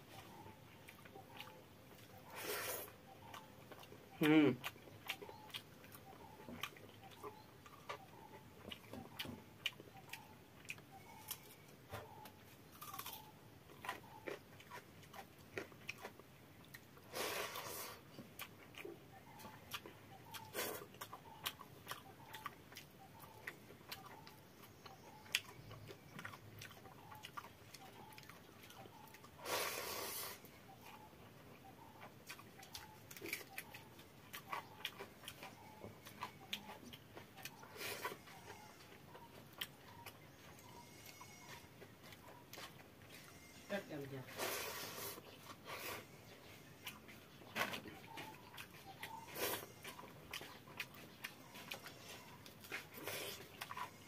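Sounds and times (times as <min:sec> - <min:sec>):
person chewing with wet smacks: 0:00.0 - 0:54.0.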